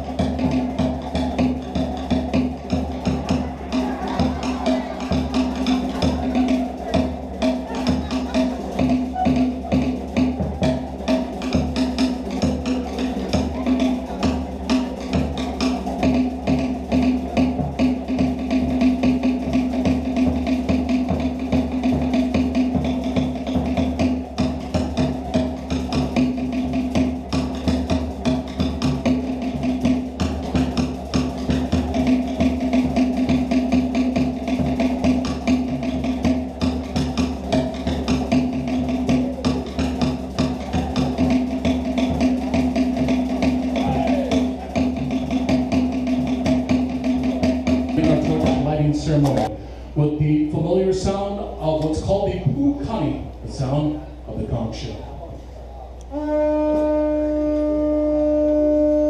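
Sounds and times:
rapid wooden drum strikes: 0.0 - 49.5.

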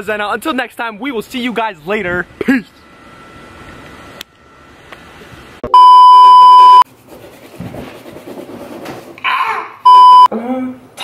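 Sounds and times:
short beep: 5.6 - 6.8, 9.9 - 10.3
electronic beep tone: 5.7 - 6.8, 9.9 - 10.3.

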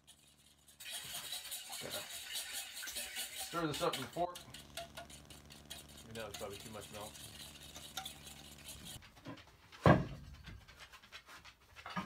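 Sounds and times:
whisking in a metal bowl: 0.0 - 9.0.

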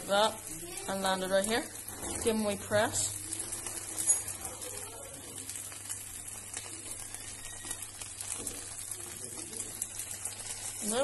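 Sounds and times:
burger patties sizzling in pan: 0.0 - 11.0.

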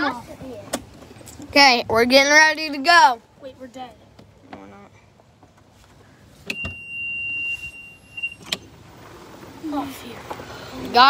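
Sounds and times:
warning beeper beep: 6.5 - 8.4.

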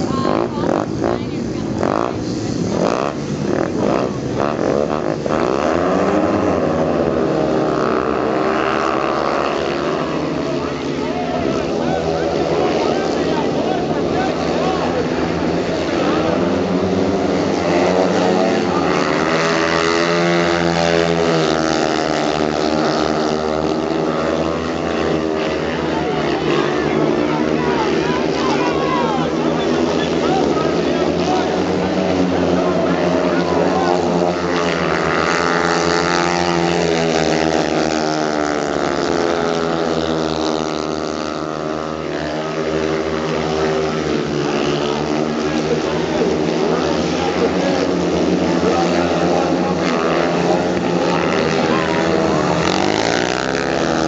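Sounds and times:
motorcycle engines wailing: 0.0 - 54.0.

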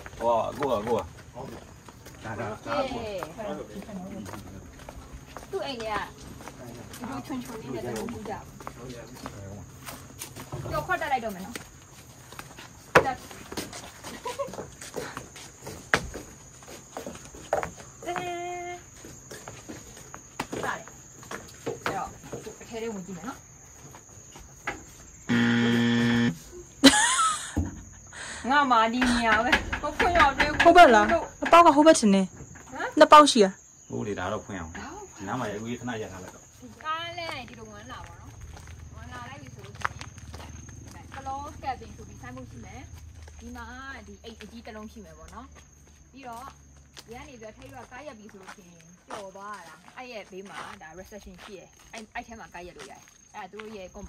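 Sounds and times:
footsteps in sandals on wooden deck: 0.0 - 33.5, 34.4 - 54.0
woman talking: 5.5 - 6.2, 18.0 - 18.9, 21.8 - 23.4, 28.4 - 33.6, 36.6 - 40.0, 40.8 - 45.6, 46.2 - 54.0
high-pitched insect drone: 22.6 - 29.5.

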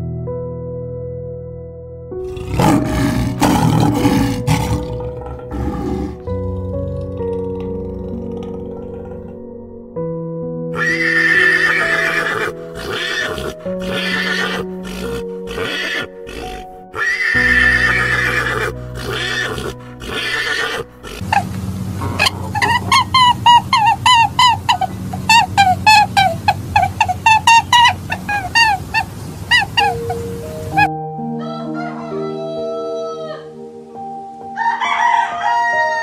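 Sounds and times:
soft background music: 0.0 - 36.0
horse whinnying: 2.2 - 9.4, 10.8 - 21.5, 22.2 - 30.9.

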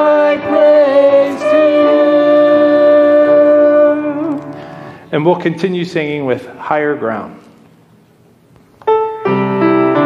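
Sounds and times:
congregation singing held note: 0.0 - 5.1.

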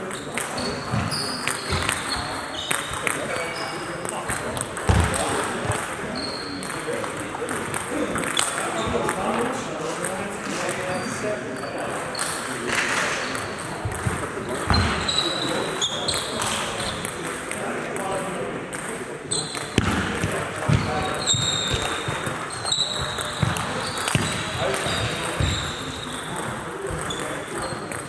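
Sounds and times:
shoes squeaking on floor: 0.0 - 6.8, 10.9 - 17.1, 19.3 - 28.0
murmur of voices: 0.0 - 28.0
table tennis balls clicking: 6.6 - 9.3, 16.1 - 18.1.

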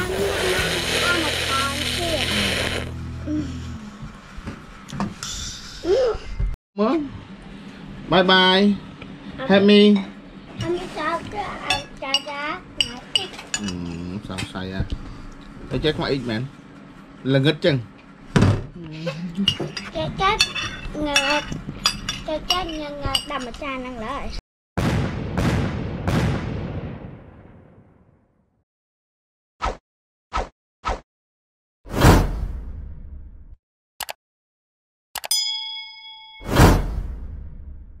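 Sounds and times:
child's voice: 0.0 - 2.5, 10.6 - 13.5, 19.9 - 21.6, 22.2 - 24.4
bell ding: 35.2 - 36.8.

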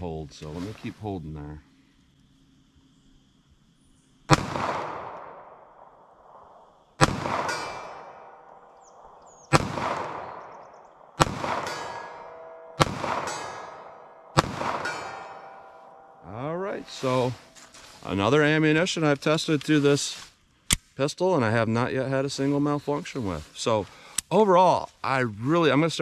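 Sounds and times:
pistol shots with echo: 4.3 - 16.1
steel plate ringing: 7.0 - 9.0, 11.2 - 18.2.

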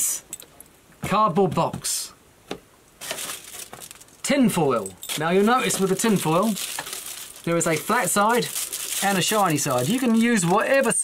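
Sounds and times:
aluminium foil crinkling: 3.0 - 4.3, 5.0 - 11.0.

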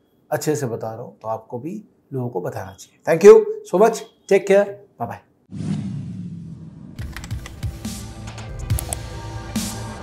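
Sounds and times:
background music: 6.6 - 10.0.

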